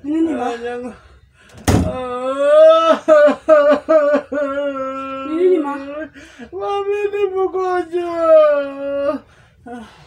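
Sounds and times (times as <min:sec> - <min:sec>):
wooden door thumping: 0:01.6 - 0:02.0.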